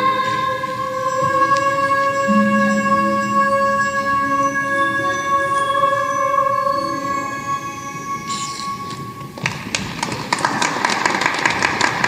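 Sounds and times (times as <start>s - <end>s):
music held notes: 1.2s - 9.6s
audience applause: 10.0s - 12.0s.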